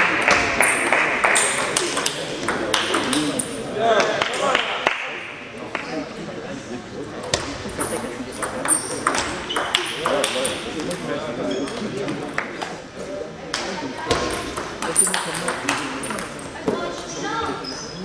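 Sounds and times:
voices talking: 5.7 - 18.0.

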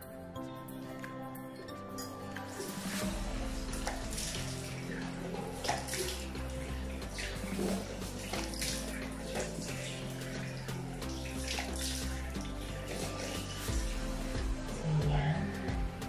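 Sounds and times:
background music: 0.0 - 16.0
water splashing in a sink: 2.4 - 13.7.

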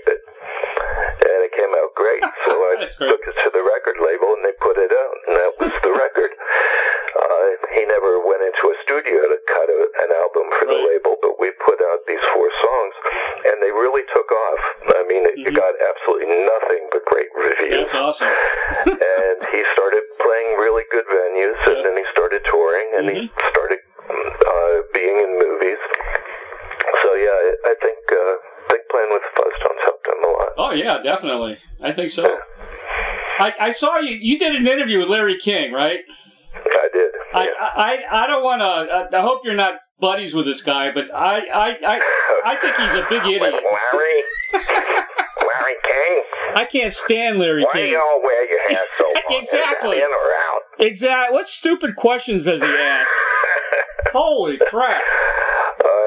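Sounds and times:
man talking over telephone: 0.0 - 56.0.

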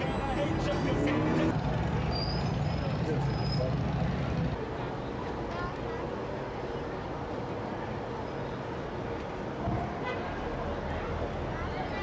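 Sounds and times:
people's voices: 0.0 - 1.9
traffic engine rumble: 0.0 - 12.0.

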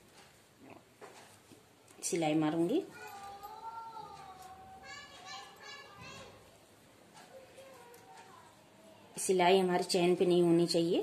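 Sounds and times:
child calling out: 2.9 - 6.4
child speaking: 2.9 - 6.5, 7.2 - 9.2.

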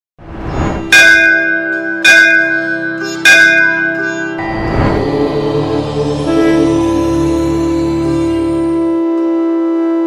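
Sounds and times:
bell ringing: 0.8 - 8.8
rising swell: 4.4 - 9.0.

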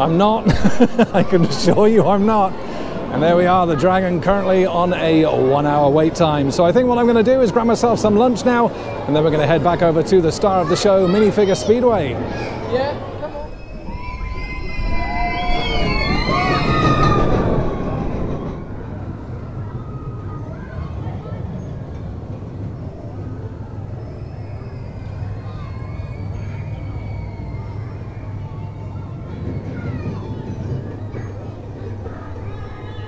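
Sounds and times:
roller coaster rumbling on track: 0.0 - 33.0
riders screaming and shouting: 13.5 - 21.0, 23.8 - 31.3.

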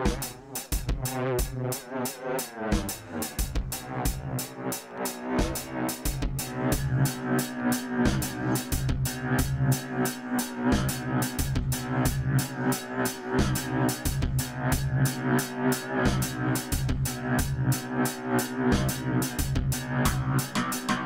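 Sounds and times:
drum machine beat with echo: 0.0 - 21.0
pitched bass line: 0.0 - 21.0.

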